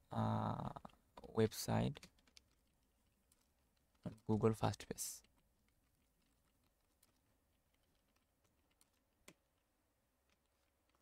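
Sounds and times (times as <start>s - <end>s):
faint keyboard typing: 0.5s - 11.0s.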